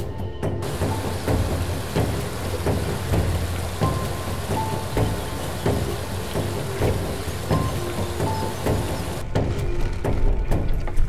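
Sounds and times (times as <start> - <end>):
background music with beat: 0.0 - 11.0
water rushing from waterfall: 0.6 - 9.2.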